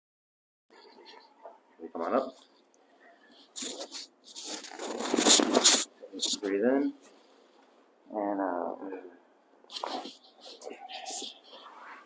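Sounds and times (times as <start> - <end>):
towel rustling and rubbing: 3.4 - 6.4.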